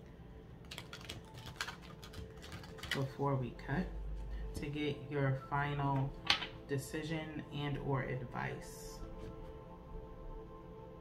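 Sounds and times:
cards being shuffled: 0.6 - 3.1.

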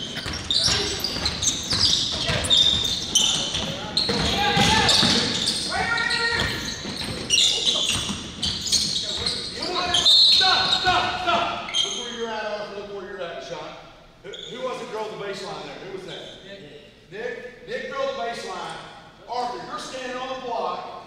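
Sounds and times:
basketball bouncing on hardwood floor: 0.0 - 5.4
players calling out: 0.0 - 12.2
sneaker squeaks: 0.0 - 12.3, 14.2 - 14.9.

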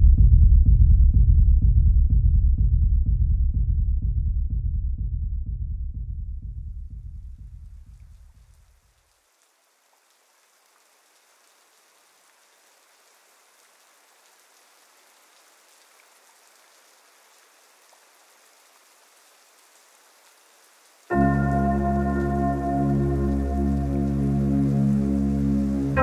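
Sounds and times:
low bass drone: 0.0 - 7.6, 21.1 - 26.0
faint hiss: 7.4 - 26.0
loud synth chord: 21.1 - 26.0.

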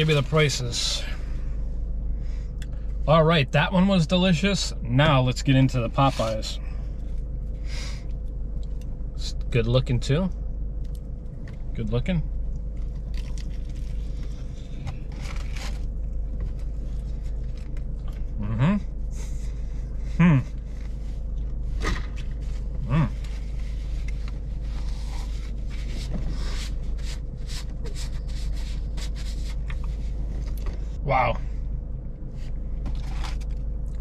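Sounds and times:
low car hum: 0.0 - 34.0
crunchy chewing: 12.6 - 18.3
man humming mm: 20.1 - 20.6.

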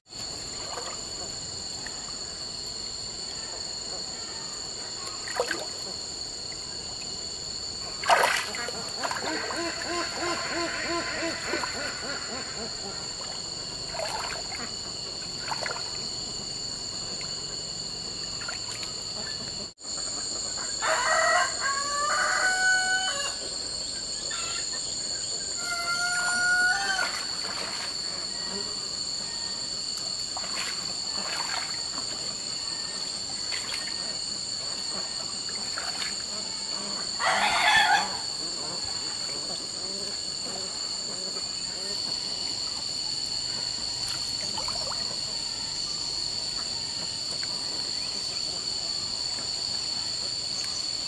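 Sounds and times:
high-pitched insect drone: 0.2 - 51.0
farm fowl calling: 8.8 - 13.2, 25.6 - 27.2, 37.2 - 38.4.

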